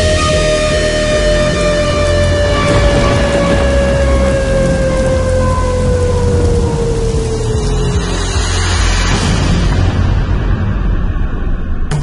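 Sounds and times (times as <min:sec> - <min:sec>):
heavy steady bass: 0:00.0 - 0:12.0.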